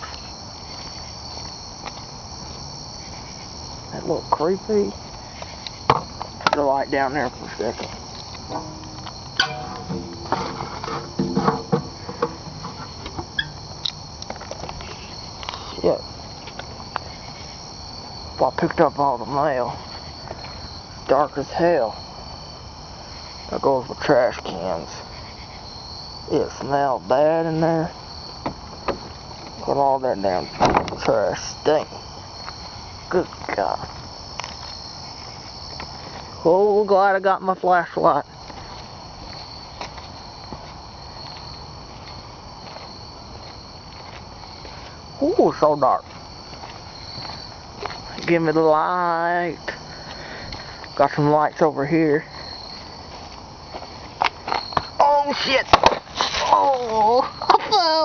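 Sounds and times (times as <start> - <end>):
crickets chirping: 0.0 - 58.0
night insects trilling: 0.0 - 58.0
close knocks and handling: 8.5 - 13.5.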